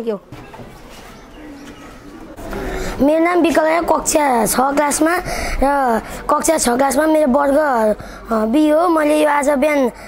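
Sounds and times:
steady background noise: 0:00.0 - 0:10.0
low cooing bird call: 0:01.1 - 0:02.8.

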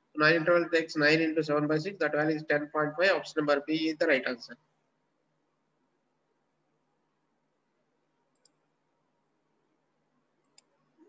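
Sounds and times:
faint mouse clicks: 0:08.3 - 0:08.7, 0:10.4 - 0:11.0.

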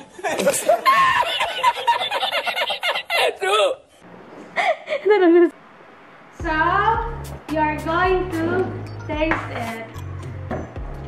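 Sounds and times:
man laughing hard: 0:00.0 - 0:03.7.

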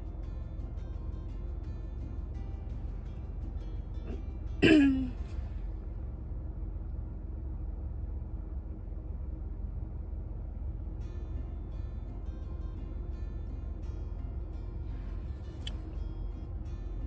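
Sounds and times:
low steady rumble: 0:00.0 - 0:17.0
woman clearing her throat: 0:04.6 - 0:05.2.

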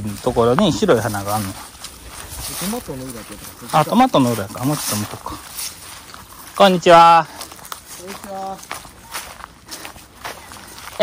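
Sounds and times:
footsteps in sandals on grass: 0:00.0 - 0:11.0
person speaking greeting: 0:08.0 - 0:08.8.

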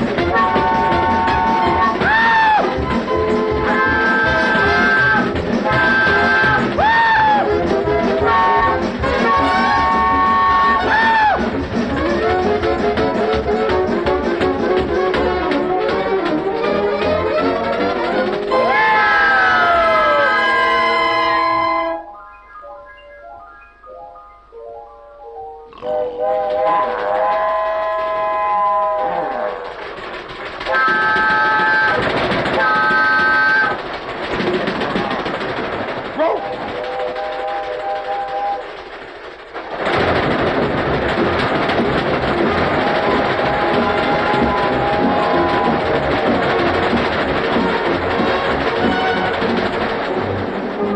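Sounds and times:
brass-led orchestral cartoon music: 0:00.0 - 0:23.4, 0:24.0 - 0:29.8, 0:42.4 - 0:50.9
steam whistle chord: 0:20.0 - 0:22.2.

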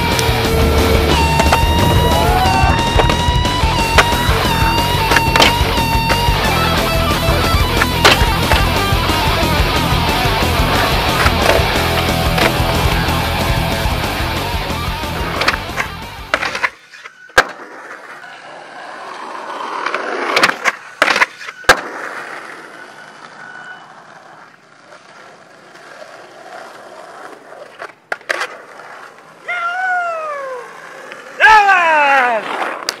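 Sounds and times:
long falling tones: 0:00.0 - 0:15.1
music: 0:00.0 - 0:16.3
skateboard wheels rolling on concrete: 0:00.0 - 0:33.0
skateboard pops and landing slaps: 0:03.9 - 0:06.3, 0:07.7 - 0:08.8, 0:11.1 - 0:11.7, 0:12.3 - 0:12.6, 0:15.3 - 0:18.3, 0:19.8 - 0:22.5, 0:27.6 - 0:29.0, 0:32.4 - 0:33.0.

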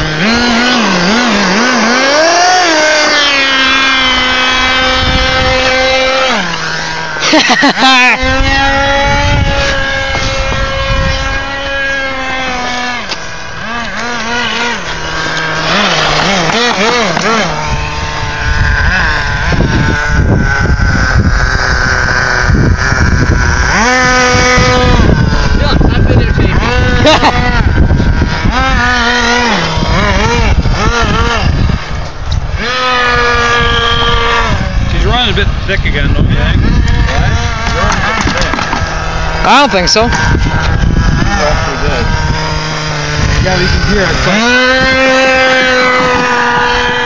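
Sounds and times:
small two-stroke engine revving: 0:00.0 - 0:47.0.

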